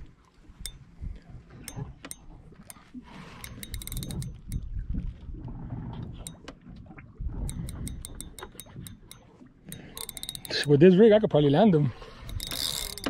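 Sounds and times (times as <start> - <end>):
fishing reel clicking: 0.6 - 0.9, 1.6 - 4.7, 7.4 - 10.8, 12.1 - 13.0.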